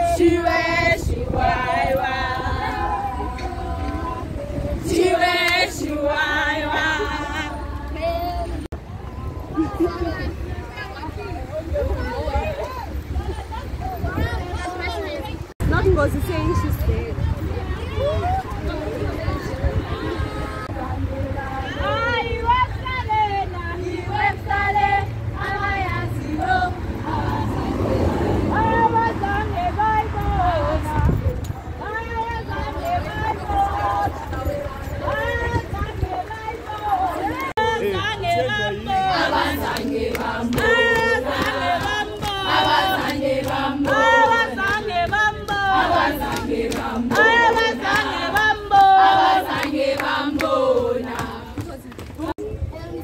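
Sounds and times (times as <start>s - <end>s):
women singing while marching: 0.0s - 53.0s.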